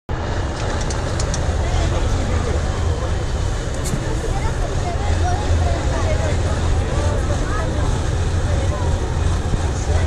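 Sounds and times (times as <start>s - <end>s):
truck diesel engine rumbling: 0.1s - 10.0s
spectators talking: 0.3s - 10.0s.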